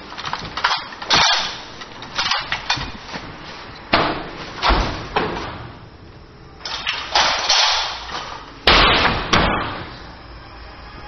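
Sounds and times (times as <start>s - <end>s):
sharp ringing bangs and knocks: 7.2s - 10.0s.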